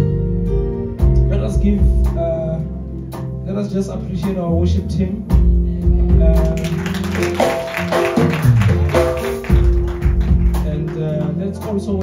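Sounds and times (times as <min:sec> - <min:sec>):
worship band playing: 0:00.0 - 0:12.0.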